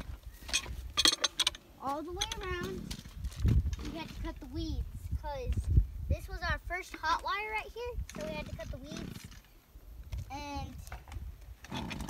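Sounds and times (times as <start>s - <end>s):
metallic clicks and rattles: 0.0s - 3.9s.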